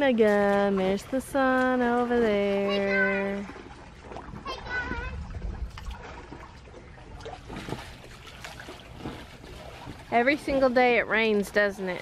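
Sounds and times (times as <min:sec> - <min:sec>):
water trickling and dripping: 0:00.0 - 0:12.0.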